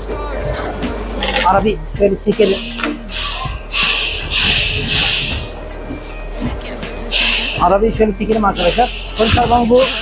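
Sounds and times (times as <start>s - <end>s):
low machine hum: 0.0s - 8.3s.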